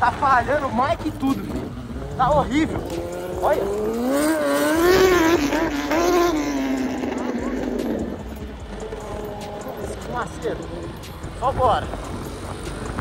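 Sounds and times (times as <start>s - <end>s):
small motorcycle riding: 0.0s - 13.0s.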